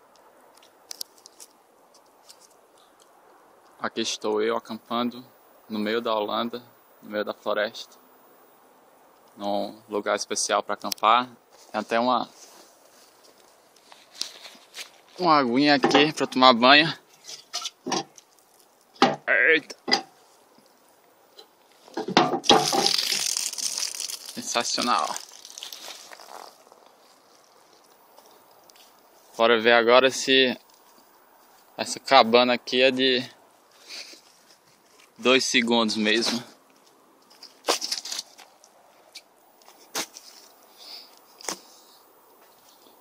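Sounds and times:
leaves and twigs crunching: 0.5s - 16.4s, 17.0s - 19.0s, 19.8s - 43.0s
rustling through dry leaves: 11.5s - 15.7s, 18.1s - 19.0s, 21.6s - 29.5s, 36.5s - 43.0s.

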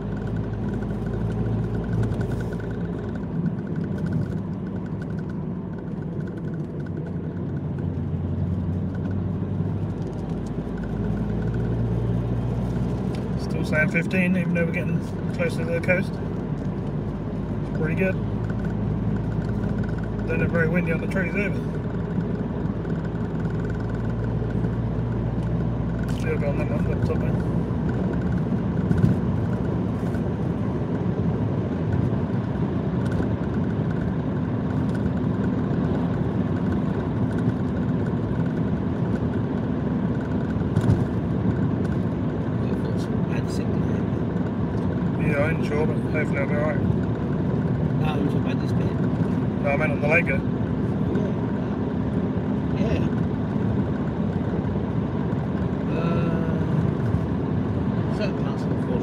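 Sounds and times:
car road and engine noise: 0.0s - 59.0s.

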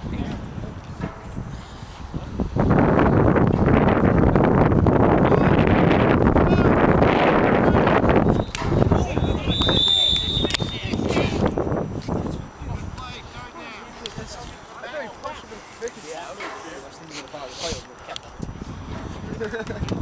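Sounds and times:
wind buffeting microphone: 0.0s - 15.9s, 18.2s - 20.0s
whistle blast: 8.2s - 10.9s.

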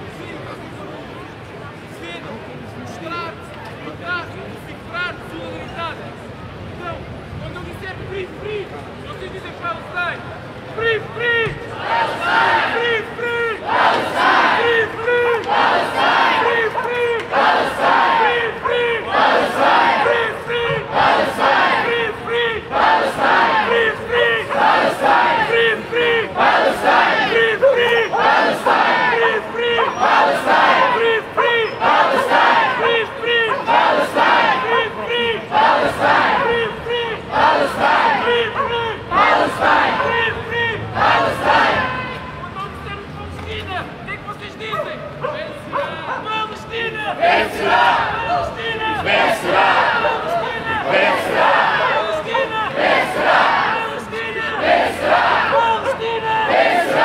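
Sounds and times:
crowd chanting: 11.7s - 42.3s, 47.1s - 57.0s.

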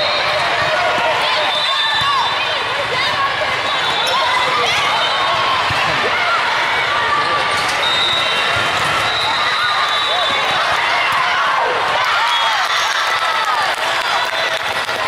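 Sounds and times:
many overlapping voices: 0.0s - 15.0s.

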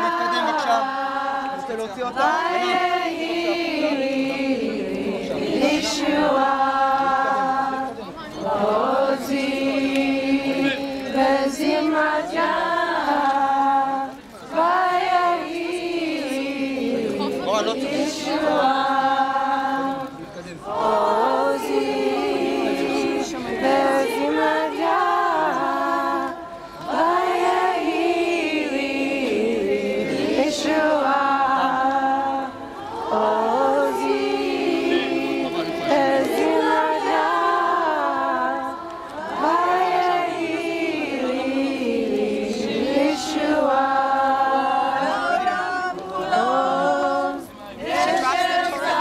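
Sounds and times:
women singing in unison: 0.0s - 49.0s.

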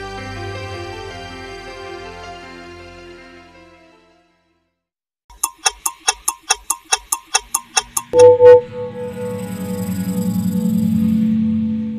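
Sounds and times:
rapid clock-like ticking: 5.3s - 8.6s.

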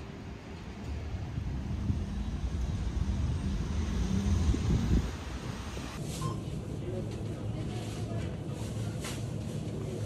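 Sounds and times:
street traffic rumble: 0.0s - 10.0s
wind on microphone: 0.9s - 6.0s.

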